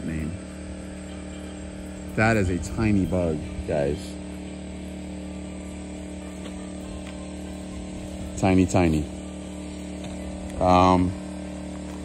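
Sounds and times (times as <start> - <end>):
portable generator humming: 0.0 - 12.0.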